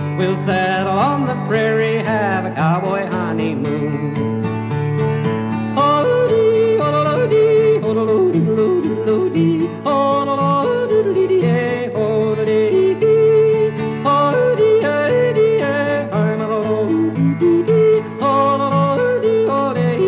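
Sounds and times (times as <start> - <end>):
country accompaniment: 0.0 - 20.0
man yodeling: 5.7 - 20.0.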